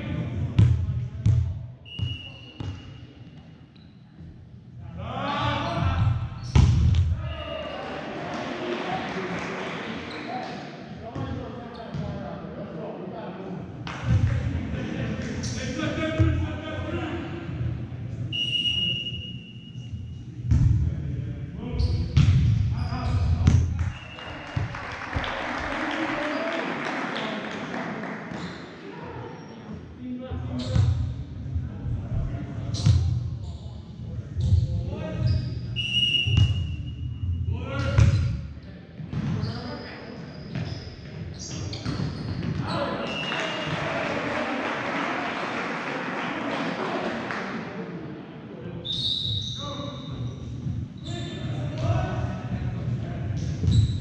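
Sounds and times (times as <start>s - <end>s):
crowd noise: 7.1s - 36.3s, 38.5s - 54.0s
sneakers squeaking on court: 39.1s - 43.7s, 53.6s - 54.0s.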